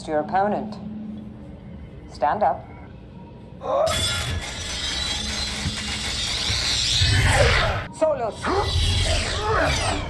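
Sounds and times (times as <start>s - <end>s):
blade scraping metal grating: 3.9s - 10.0s.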